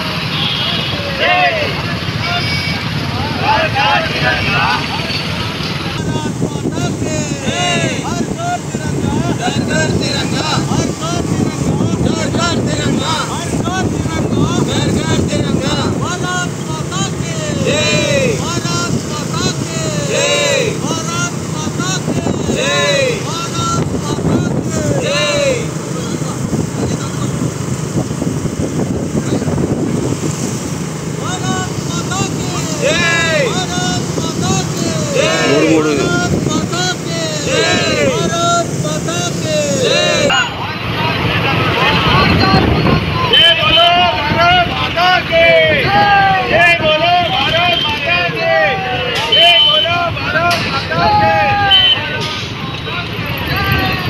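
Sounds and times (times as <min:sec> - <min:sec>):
motorbike traffic rumble: 0:00.0 - 0:54.0
wind: 0:00.0 - 0:54.0
loud raised voices calling: 0:00.2 - 0:26.5, 0:31.1 - 0:54.0
high voice singing: 0:35.2 - 0:36.4.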